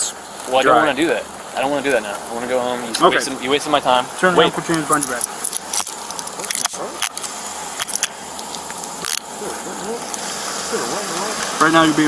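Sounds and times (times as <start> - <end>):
handcuffs jingling: 4.9 - 7.2.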